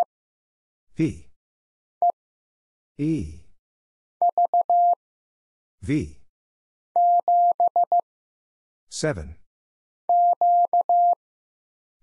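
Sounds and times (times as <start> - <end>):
morse code tone: 4.2 - 5.0, 7.0 - 8.0, 10.1 - 11.2.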